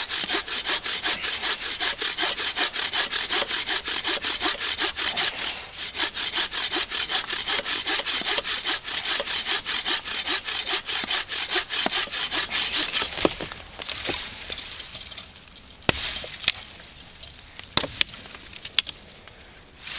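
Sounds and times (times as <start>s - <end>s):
bow saw cutting branch: 0.0s - 15.3s, 15.9s - 18.2s.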